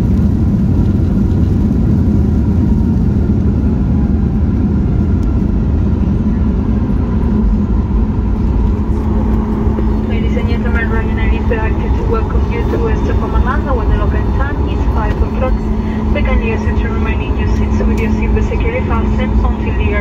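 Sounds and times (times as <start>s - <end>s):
airliner cabin engine rumble: 0.0s - 20.0s
faint steady whine: 0.0s - 20.0s.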